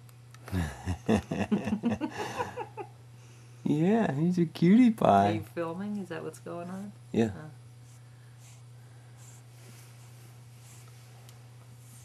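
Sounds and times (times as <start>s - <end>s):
low electrical hum: 0.0s - 12.0s
person laughing: 0.4s - 2.9s.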